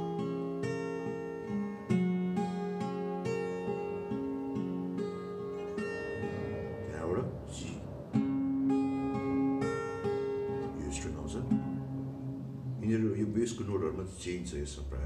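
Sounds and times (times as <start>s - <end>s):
twelve-string acoustic guitar fingerpicking: 0.0s - 14.9s.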